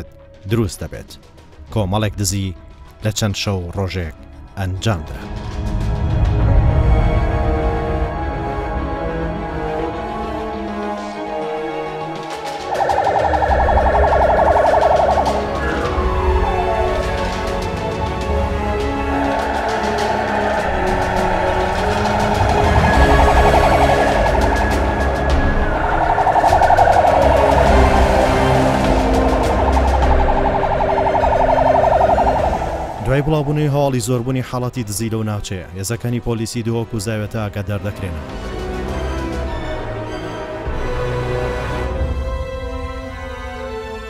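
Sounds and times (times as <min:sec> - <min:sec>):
police siren fast warble: 0:12.6 - 0:34.0.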